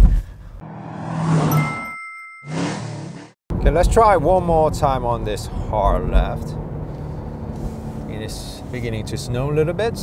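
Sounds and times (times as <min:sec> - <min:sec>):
car engine revving past: 0:00.6 - 0:01.7
whoosh: 0:00.6 - 0:03.4
bright ding: 0:01.5 - 0:02.6.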